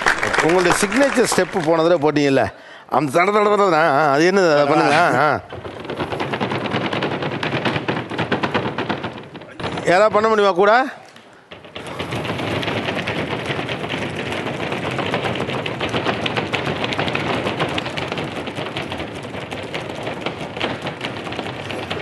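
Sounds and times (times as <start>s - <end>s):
audience applauding: 0.0s - 2.3s.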